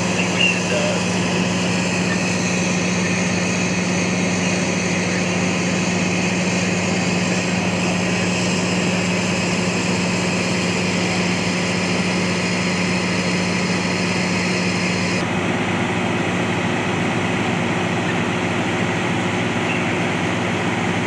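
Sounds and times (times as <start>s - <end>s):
fire engine droning: 0.0s - 21.0s.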